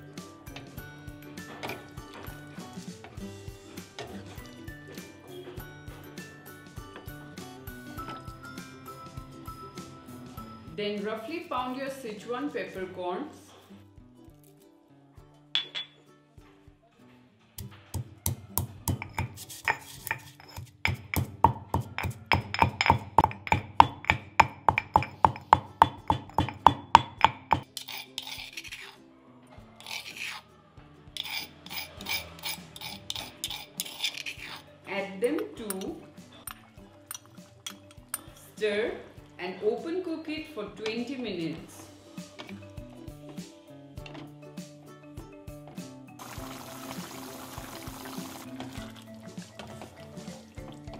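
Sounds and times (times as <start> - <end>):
soft background music: 0.0 - 50.9
pestle pounding in stone mortar: 17.6 - 28.0
pestle grinding and scraping: 17.9 - 29.0, 29.8 - 30.5, 31.2 - 34.7.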